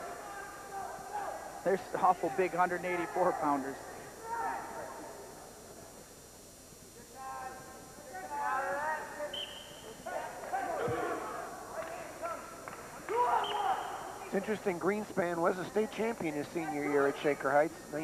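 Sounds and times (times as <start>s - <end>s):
people shouting: 4.2s - 4.9s, 10.1s - 11.6s, 13.1s - 14.2s.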